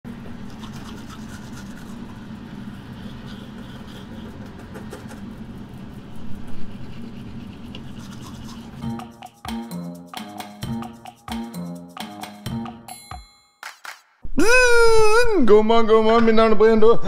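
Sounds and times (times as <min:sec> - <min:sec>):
electric toothbrushes buzzing: 0:00.4 - 0:02.7, 0:03.3 - 0:11.3
scratchy brushing noise: 0:00.4 - 0:09.4.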